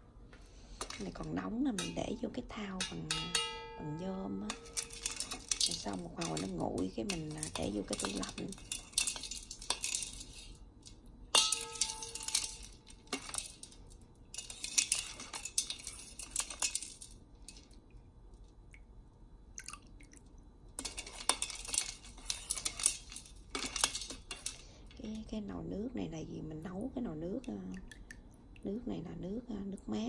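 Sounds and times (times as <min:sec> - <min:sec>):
spoon clinking in metal basin: 0:00.8 - 0:10.6, 0:11.4 - 0:13.8, 0:14.4 - 0:17.6, 0:20.8 - 0:24.6.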